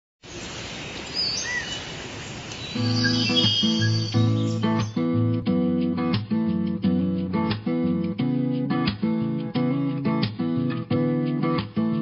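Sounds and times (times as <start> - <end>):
steady background hiss: 0.2 - 5.3
bird chirps: 0.7 - 5.2.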